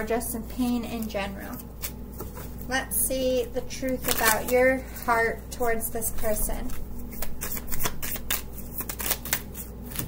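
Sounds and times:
cards being shuffled by hand: 3.4s - 10.0s.

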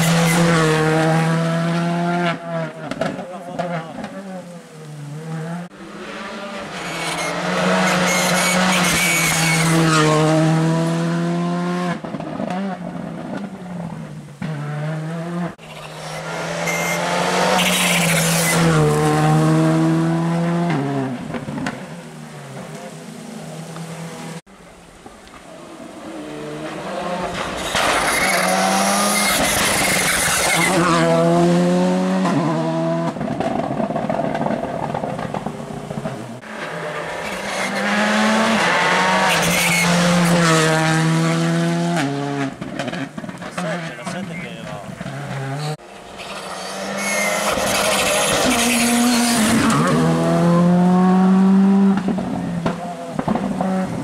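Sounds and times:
rally cars passing at speed: 0.0s - 54.0s.

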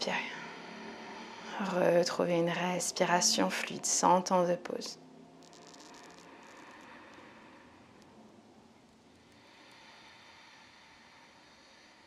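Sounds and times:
faint room hiss: 0.0s - 12.0s.

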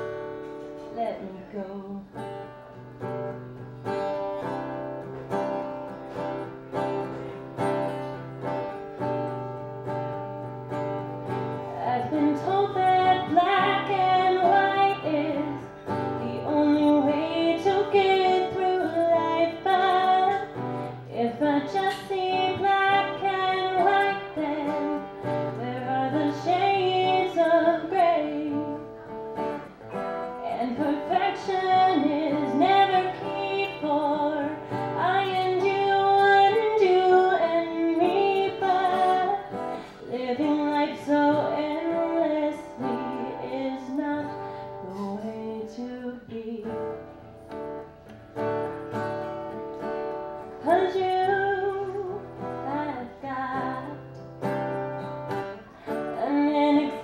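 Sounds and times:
woman singing: 0.0s - 2.7s, 11.0s - 47.8s, 50.4s - 57.0s
acoustic guitar: 0.0s - 57.0s.

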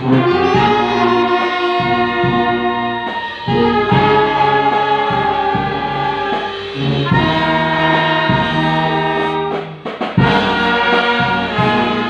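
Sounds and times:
brass band playing chords: 0.0s - 12.0s.

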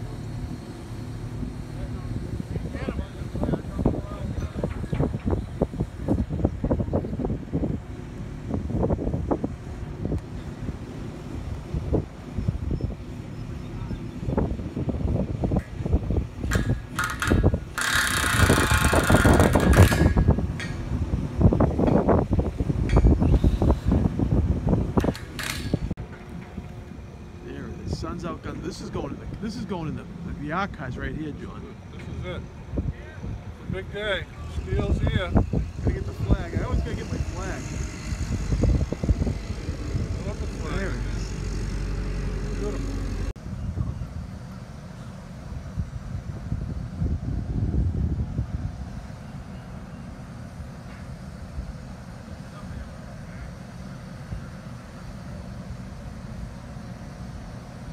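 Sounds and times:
distant voices: 0.0s - 20.9s, 26.0s - 45.6s
low outdoor rumble: 0.0s - 57.9s
wind buffeting microphone: 0.1s - 57.9s.

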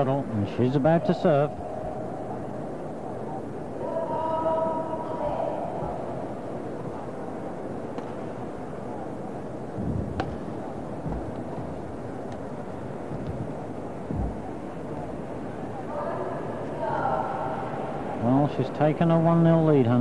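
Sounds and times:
footwork thuds on court: 9.8s - 10.4s, 11.0s - 11.8s, 14.1s - 14.5s
racket hitting shuttlecock: 9.8s - 10.5s.

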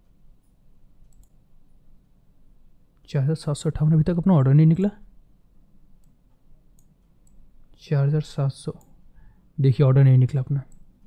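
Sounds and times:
computer mouse clicks: 1.0s - 1.4s, 6.8s - 7.4s
man speaking: 3.1s - 5.0s, 9.6s - 10.7s.

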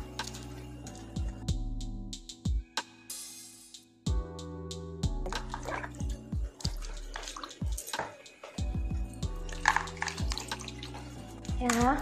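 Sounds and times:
background music with bass beat: 0.0s - 12.0s
water splashing and sloshing: 5.2s - 12.0s.

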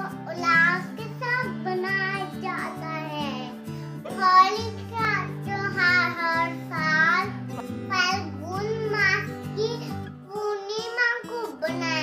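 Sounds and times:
backing music track: 0.0s - 12.0s
girl singing: 0.0s - 12.0s.

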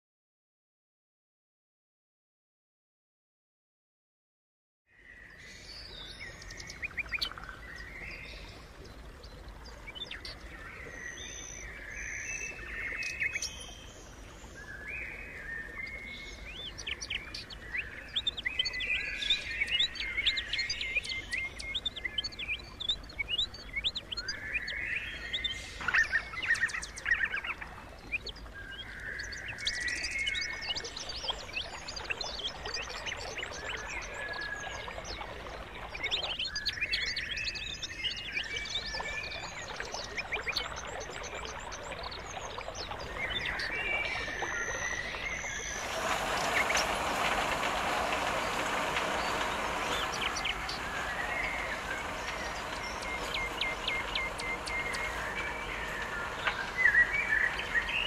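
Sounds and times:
birds chirping and trilling: 5.0s - 58.0s.

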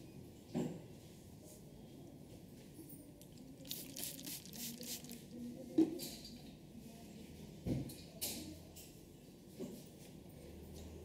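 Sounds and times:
hands rustling dry hair: 3.7s - 5.3s.

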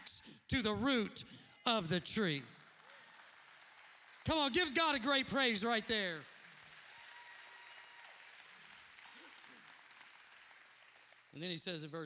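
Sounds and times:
congregation applauding: 1.7s - 12.0s.

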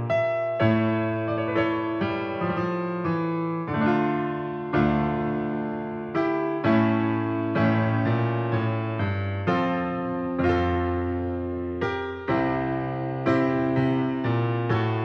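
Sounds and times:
slow piano chords: 0.0s - 15.0s.

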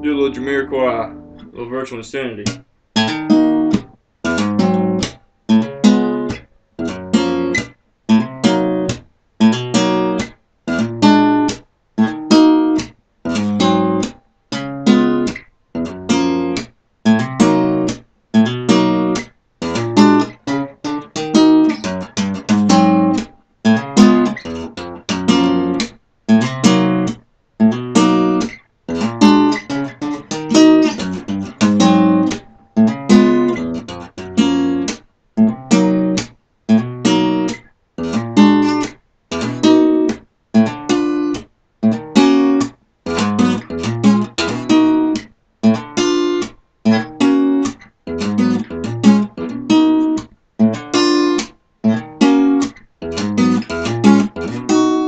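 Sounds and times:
fingerstyle acoustic guitar: 0.0s - 55.0s.

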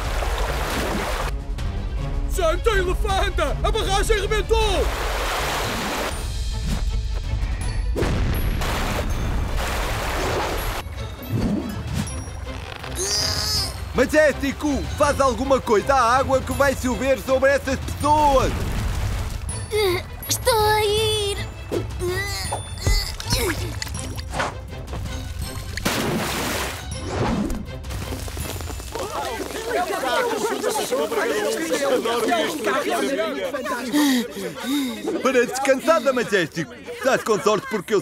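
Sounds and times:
cartoon water rushing and crashing: 0.0s - 1.3s, 4.7s - 6.2s, 8.0s - 10.8s, 25.4s - 32.0s
water rushing and crashing: 0.0s - 1.4s, 3.8s - 6.3s, 8.0s - 13.0s, 13.6s - 22.0s, 23.1s - 27.1s, 27.7s - 36.0s
background music: 0.0s - 38.0s.

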